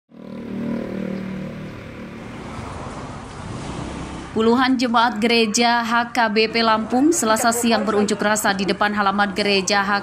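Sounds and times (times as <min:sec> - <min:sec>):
vehicle engine running: 0:00.1 - 0:05.5
street hum: 0:00.1 - 0:10.0.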